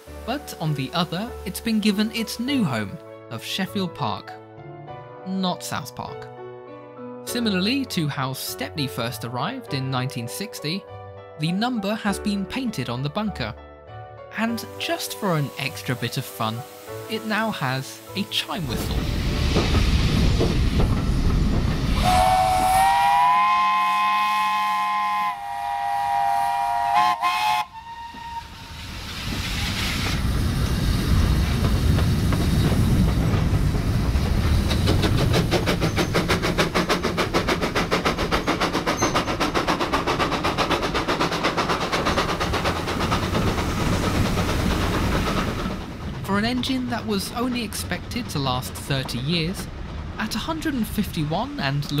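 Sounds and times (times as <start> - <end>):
steam locomotive exhaust beat: 14.5 - 52.0.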